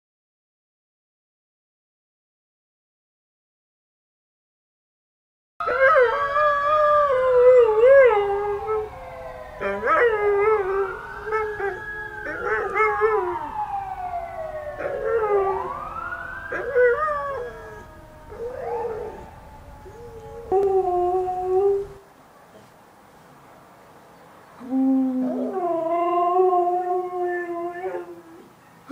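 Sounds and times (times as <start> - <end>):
dog howling: 5.6 - 22.0, 24.6 - 28.5
emergency siren wailing: 5.6 - 22.0.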